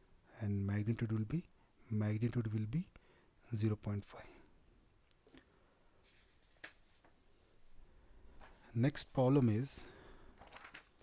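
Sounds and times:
paper rustling on a desk: 0:06.0 - 0:07.6, 0:08.4 - 0:08.7, 0:10.4 - 0:11.0.

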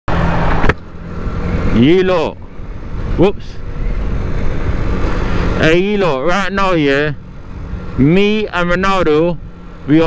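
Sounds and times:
quiet engine hum: 0:00.2 - 0:10.0.

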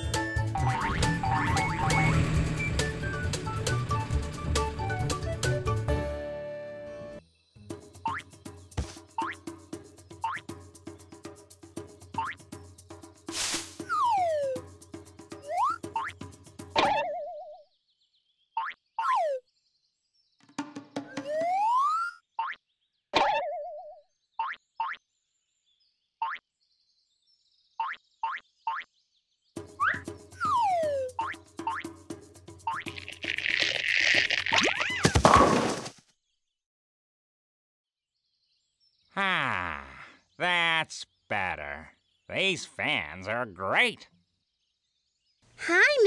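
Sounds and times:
light background music: 0:00.0 - 0:16.8
cartoon boings: 0:16.8 - 0:17.6, 0:23.2 - 0:25.0.

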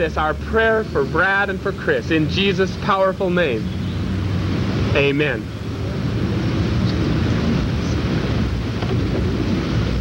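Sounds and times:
wind rumble on microphone: 0:05.8 - 0:10.0.

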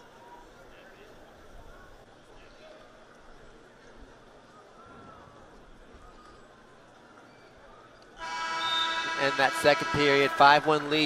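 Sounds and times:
faint arena background noise: 0:00.0 - 0:11.0
scoreboard horn: 0:08.2 - 0:11.0.

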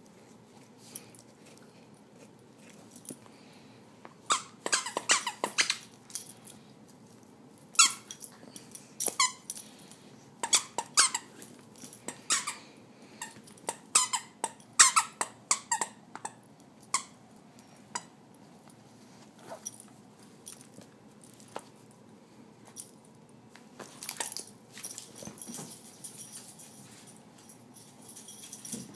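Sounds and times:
dog chewing toy: 0:04.3 - 0:05.9
squeaky toy squeaking: 0:04.3 - 0:05.9, 0:07.8 - 0:08.0, 0:10.4 - 0:11.3, 0:12.3 - 0:12.6, 0:13.7 - 0:16.0.

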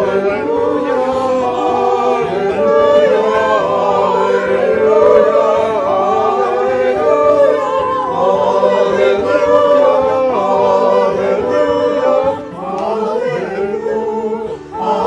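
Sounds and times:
choir singing slow piece: 0:00.0 - 0:15.0.

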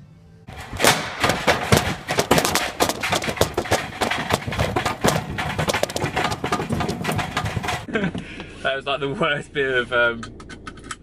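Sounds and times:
shopping trolley rattling over paving: 0:00.5 - 0:07.9.

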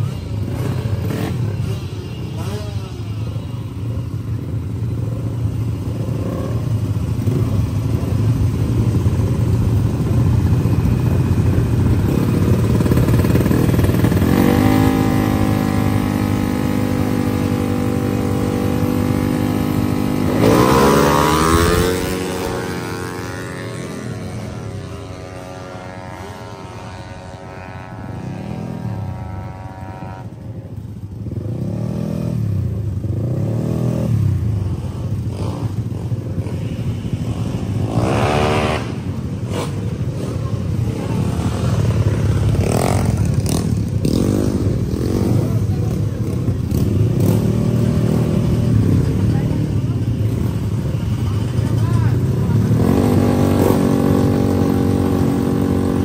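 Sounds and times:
scooter engine blipping revs: 0:00.0 - 0:56.0
scooter engine revving high: 0:09.3 - 0:30.4, 0:37.1 - 0:56.0.

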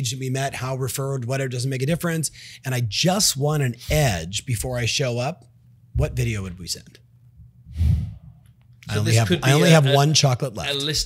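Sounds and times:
man speaking: 0:08.9 - 0:11.0.

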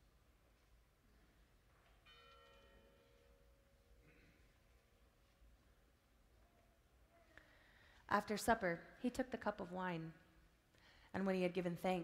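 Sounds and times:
altar bell ringing: 0:01.8 - 0:05.5.

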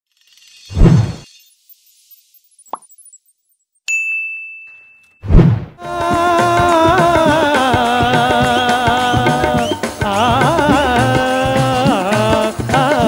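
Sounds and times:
bell-like ding: 0:03.9 - 0:05.2
music: 0:05.8 - 0:13.0.

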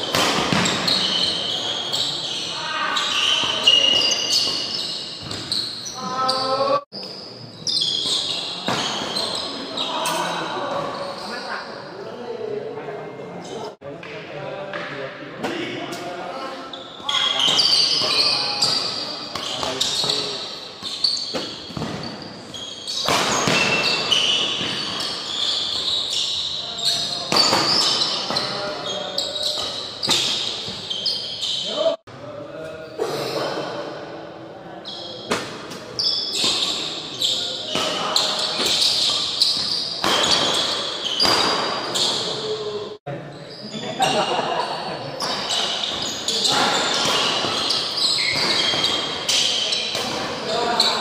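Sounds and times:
shoe squeaks on court floor: 0:00.0 - 0:11.9, 0:16.7 - 0:32.0, 0:34.8 - 0:51.0
voices echoing in a hall: 0:00.0 - 0:51.0.

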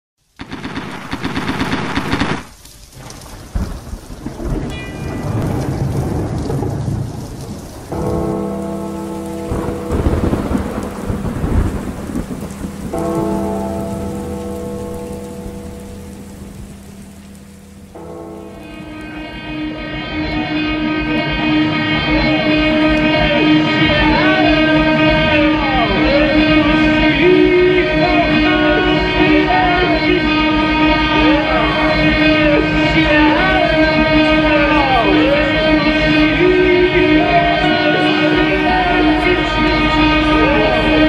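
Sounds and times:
rain: 0:00.2 - 0:41.0
thunder: 0:00.4 - 0:19.3, 0:21.0 - 0:37.6
sustained chord tones: 0:07.9 - 0:41.0.

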